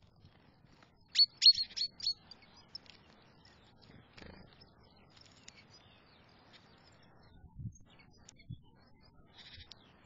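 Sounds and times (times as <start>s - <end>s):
songbird chirping: 0.0s - 10.0s.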